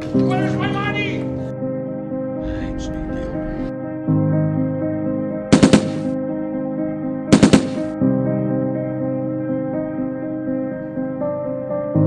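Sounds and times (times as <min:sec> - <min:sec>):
low background music: 0:00.0 - 0:12.0
gunfire bursts: 0:05.5 - 0:06.1, 0:07.3 - 0:07.9.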